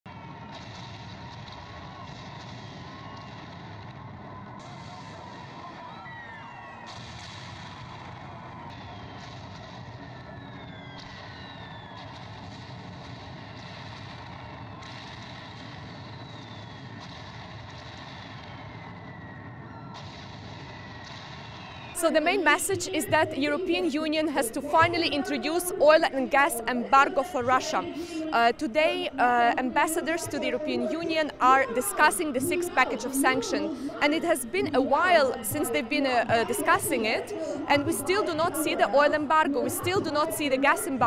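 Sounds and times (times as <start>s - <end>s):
outdoor ambience: 0.1s - 41.0s.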